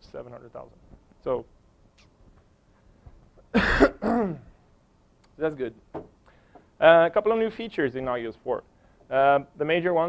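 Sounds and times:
man coughing loudly: 3.5 - 4.6.

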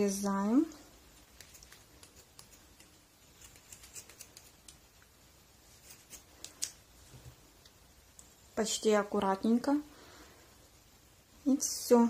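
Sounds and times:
scissors snipping: 1.4 - 4.8.

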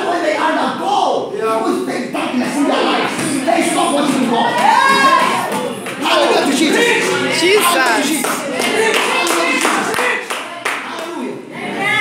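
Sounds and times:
excited voices calling out: 2.2 - 10.3
congregation clapping: 4.5 - 11.3.

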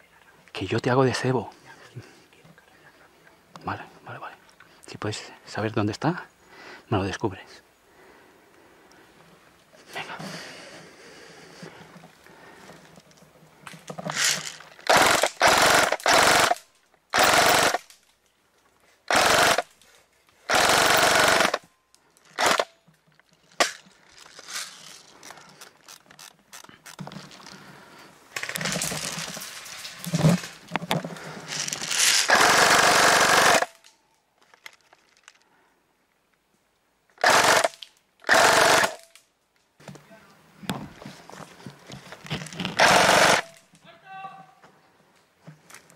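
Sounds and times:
airsoft rifle full-auto bursts: 14.2 - 17.9, 19.1 - 19.7, 20.5 - 21.6, 22.4 - 22.7, 32.2 - 33.8, 37.2 - 39.0, 42.8 - 43.6.

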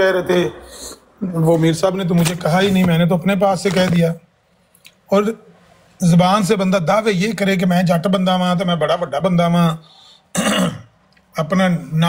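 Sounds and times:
man speaking: 0.0 - 4.3, 5.0 - 10.0, 11.3 - 12.0
man clearing his throat: 10.3 - 11.0.

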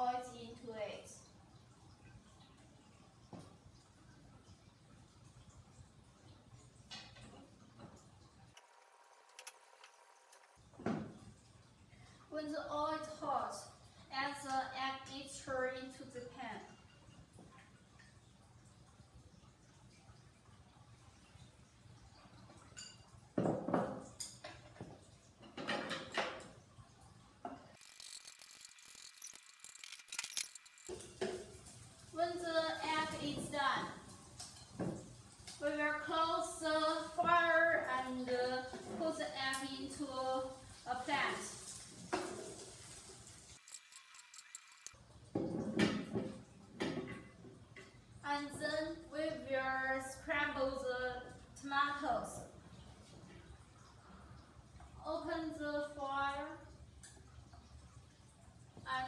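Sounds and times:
steady high sizzle of egg frying: 0.0 - 49.1, 50.1 - 59.0
egg sizzling in hot oil: 27.7 - 32.8, 39.5 - 45.0.

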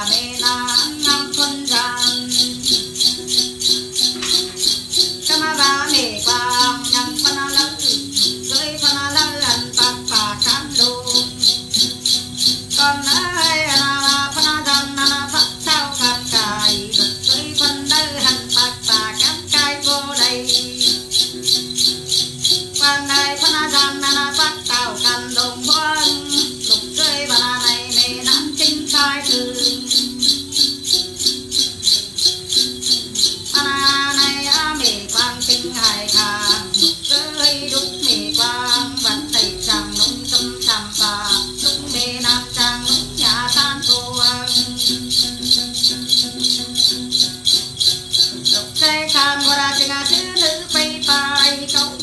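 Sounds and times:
small metal bells shaken: 0.0 - 52.0
woman singing: 0.0 - 52.0.

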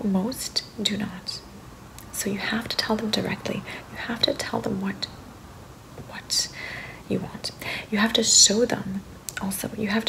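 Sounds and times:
breathy hiss: 3.5 - 4.2, 6.2 - 8.0.

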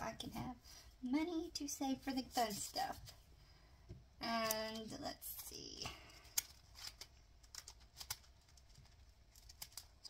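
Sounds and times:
plastic crinkling: 6.2 - 10.0.

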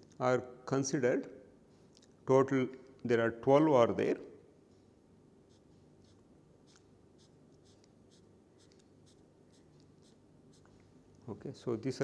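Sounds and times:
low room hum: 0.0 - 12.0
marker strokes on paper: 5.4 - 11.0.

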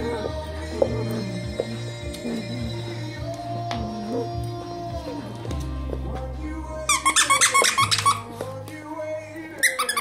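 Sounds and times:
background music with low notes: 0.0 - 10.0
dog toy squeaker squeaking: 6.9 - 8.3, 9.6 - 10.0.

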